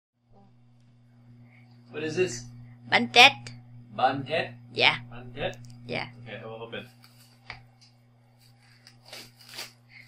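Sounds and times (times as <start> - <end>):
faint steady hum: 0.2 - 10.0
plastic wrap crinkling: 6.9 - 7.5, 8.4 - 10.0.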